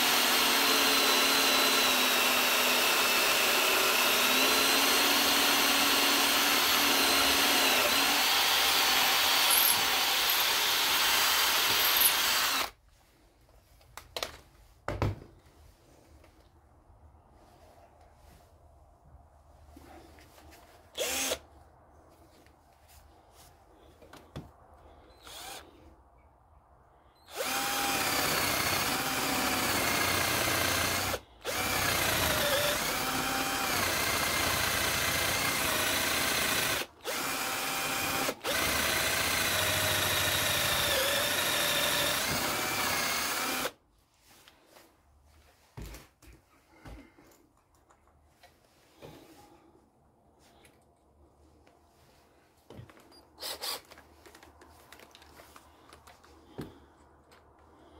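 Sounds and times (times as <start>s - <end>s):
cordless drill boring into wood: 0.0s - 12.8s, 21.0s - 21.4s, 25.2s - 25.7s, 27.3s - 43.8s, 53.4s - 54.0s.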